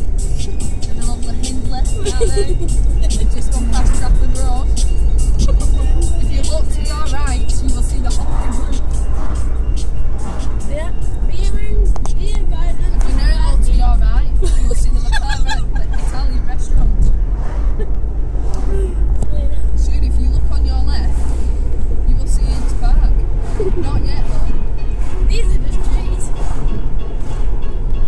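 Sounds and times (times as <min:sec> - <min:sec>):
music: 0:00.0 - 0:15.8, 0:24.0 - 0:28.0
voices: 0:00.0 - 0:18.0, 0:18.6 - 0:27.4
car engine and road rumble: 0:00.0 - 0:28.0.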